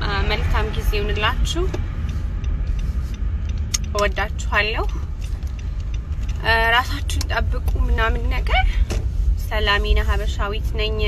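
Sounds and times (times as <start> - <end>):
woman speaking: 0.0 - 1.8, 3.8 - 5.1, 6.4 - 8.8, 9.4 - 11.0
car cabin rumble: 0.0 - 11.0.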